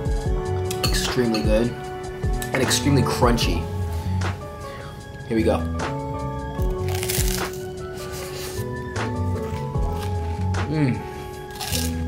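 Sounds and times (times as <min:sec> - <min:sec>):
background music with steady beat: 0:00.0 - 0:12.0
crunchy rice cake chewing: 0:06.6 - 0:08.7, 0:09.3 - 0:10.6, 0:11.4 - 0:12.0.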